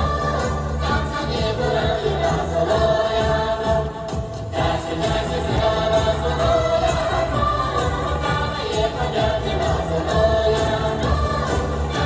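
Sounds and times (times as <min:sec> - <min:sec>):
group of voices singing: 0:00.0 - 0:12.0.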